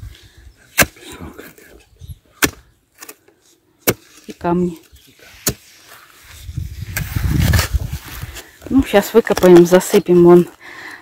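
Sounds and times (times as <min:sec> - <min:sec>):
spade scraping into stony soil: 0:03.0 - 0:10.0.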